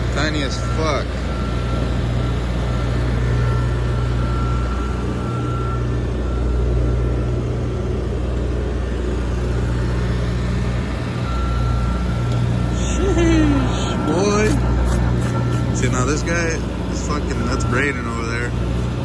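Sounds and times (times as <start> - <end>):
diesel engine droning: 0.0 - 19.0.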